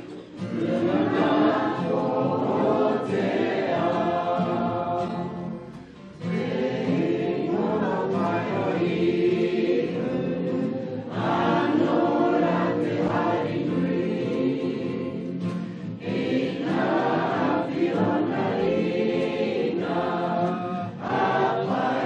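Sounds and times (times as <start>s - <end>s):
choir singing in harmony: 0.0s - 22.0s.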